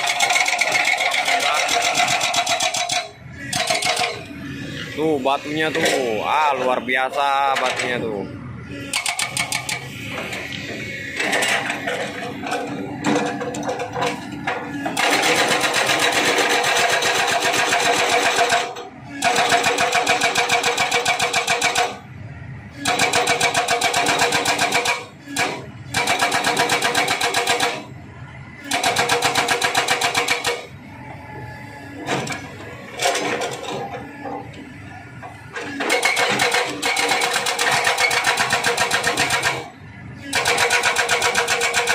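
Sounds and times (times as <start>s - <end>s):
excavator engine running: 0.0s - 41.9s
hydraulic breaker hammering rock: 14.7s - 22.0s, 22.8s - 27.9s, 28.6s - 30.7s, 35.6s - 41.9s.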